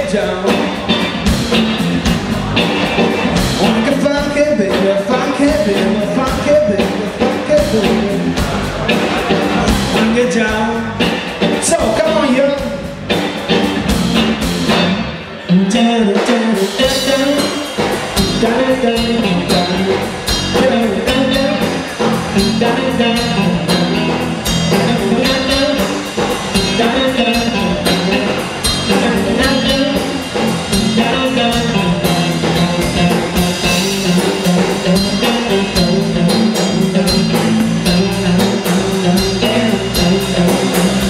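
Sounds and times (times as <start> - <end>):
drum kit beat: 0.0 - 41.0
electric bass: 0.0 - 41.0
electric guitar: 0.0 - 41.0.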